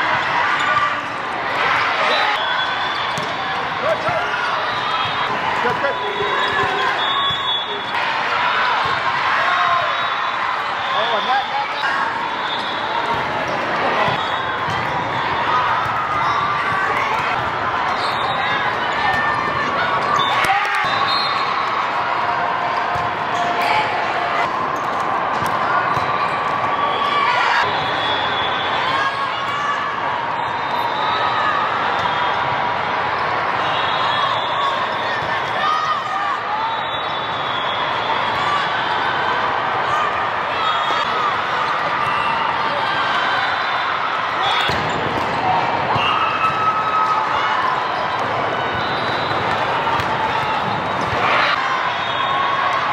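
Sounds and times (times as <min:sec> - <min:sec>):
crowd chatter in echoing hall: 0:00.0 - 0:52.9
volleyballs struck and bouncing: 0:03.1 - 0:07.4, 0:13.0 - 0:18.0, 0:24.4 - 0:26.7, 0:44.6 - 0:46.6, 0:49.3 - 0:51.5.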